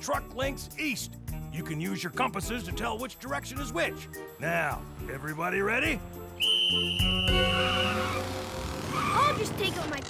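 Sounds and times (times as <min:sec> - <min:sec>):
background music: 0:00.0 - 0:10.0
whistle long high blast: 0:06.4 - 0:09.2.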